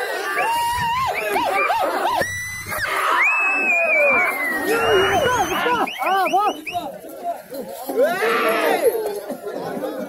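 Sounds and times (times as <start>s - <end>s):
men shouting and yelling: 0.0s - 10.0s.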